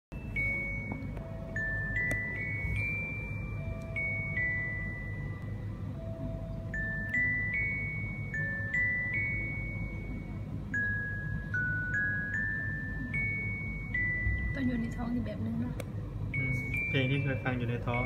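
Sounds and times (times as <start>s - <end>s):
bell-like chiming lullaby: 0.1s - 18.0s.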